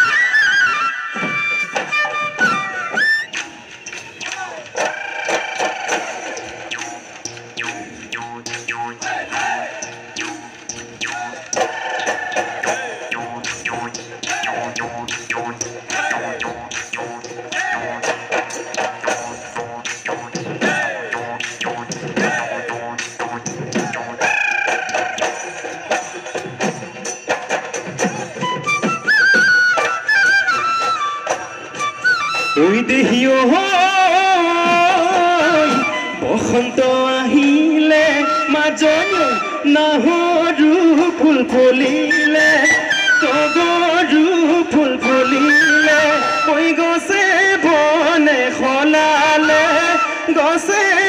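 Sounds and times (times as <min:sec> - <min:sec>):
high wind instrument melody: 0:00.0 - 0:03.5, 0:28.0 - 0:33.6, 0:35.1 - 0:40.3, 0:42.0 - 0:46.9
dhol drumbeats: 0:01.3 - 0:28.9
dance music: 0:05.6 - 0:28.4.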